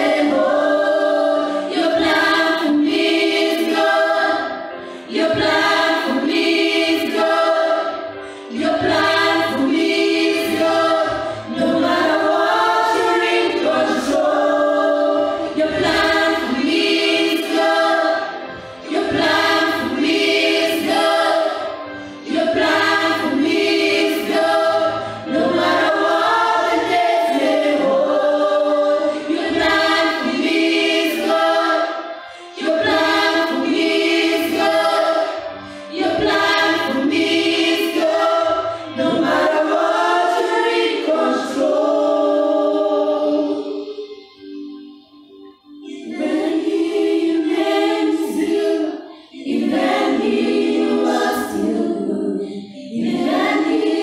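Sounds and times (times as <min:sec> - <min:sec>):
group singing gospel song: 0:00.0 - 0:44.5, 0:45.8 - 0:54.0.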